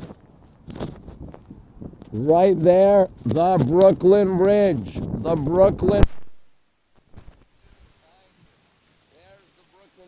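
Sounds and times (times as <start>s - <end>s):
wind rumbling on microphone: 0.0s - 6.5s.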